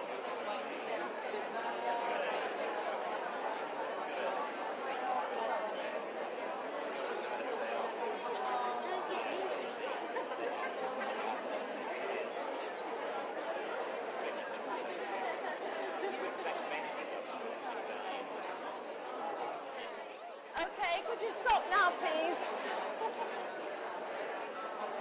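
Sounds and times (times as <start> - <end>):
hubbub of overlapping conversations: 0.0 - 25.0.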